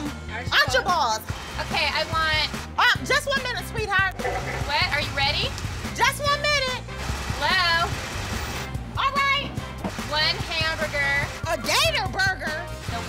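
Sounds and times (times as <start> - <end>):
background music with bass line: 0.0 - 13.0.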